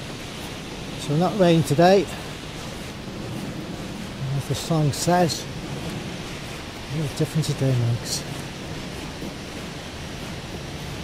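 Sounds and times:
river and waterfall rushing: 0.0 - 11.0.

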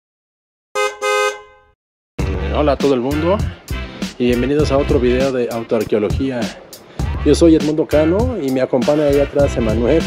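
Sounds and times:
car horn honking: 0.8 - 1.8.

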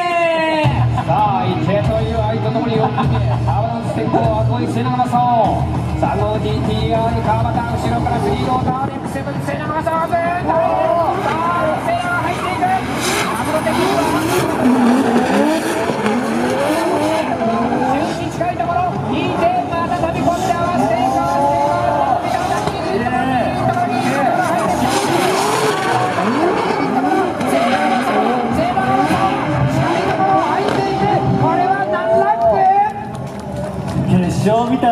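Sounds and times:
car engines revving high: 0.0 - 34.9
tyres squealing and skidding: 9.5 - 32.8.

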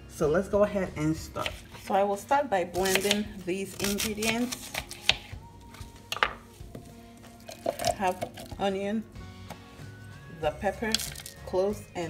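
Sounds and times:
faint background music: 0.0 - 12.0
onion pieces clattering in blender cup: 7.5 - 8.6.

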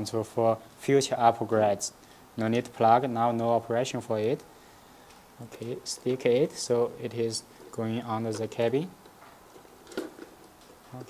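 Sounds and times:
faint handling noises: 4.1 - 11.0.

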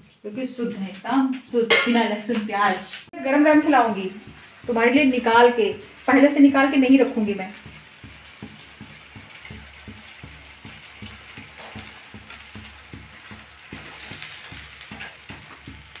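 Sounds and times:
food sizzling in hot oil: 3.1 - 16.0
crackling oil pops: 7.5 - 16.0.

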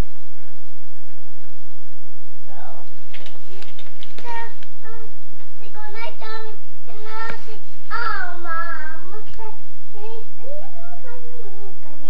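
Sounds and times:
young child singing: 4.2 - 12.0.

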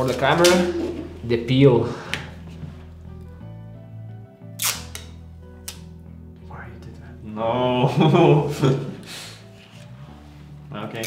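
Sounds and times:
background music: 0.0 - 11.0
plastic film crackling snaps: 4.6 - 5.9.

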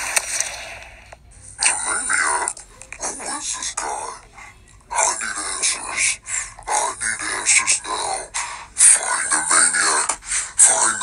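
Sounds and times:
person making rough speech-like sounds: 4.9 - 11.0.

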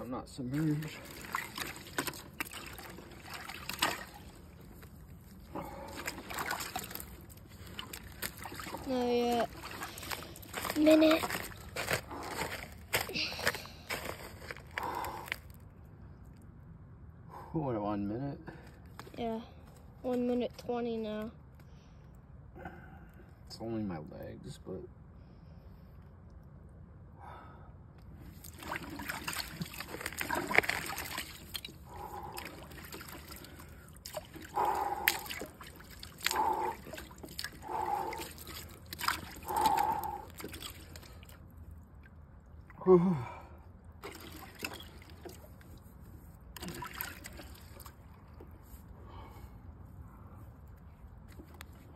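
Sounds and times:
water sloshing and splashing in bathtub: 0.4 - 14.6, 28.3 - 41.4, 44.0 - 48.8
man breathing heavily: 5.5 - 6.3, 11.8 - 15.5, 27.1 - 27.9, 31.8 - 32.8, 33.4 - 35.6, 36.2 - 38.8, 39.4 - 40.4, 42.9 - 43.8, 48.9 - 50.6.

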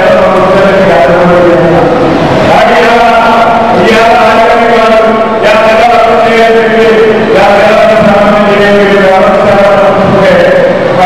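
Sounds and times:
person chanting long notes: 0.0 - 11.0.

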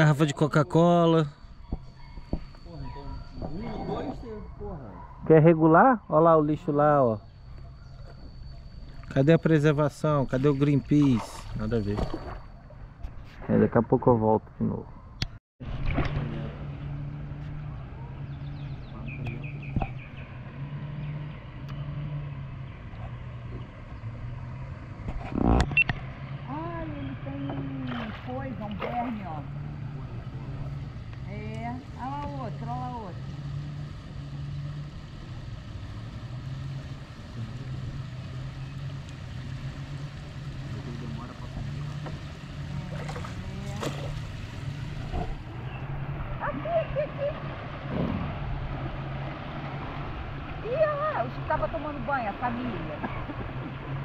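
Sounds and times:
distant voices: 0.0 - 54.0
steady low hum: 6.4 - 54.0
river water moving around raft: 7.5 - 13.8, 15.6 - 54.0.

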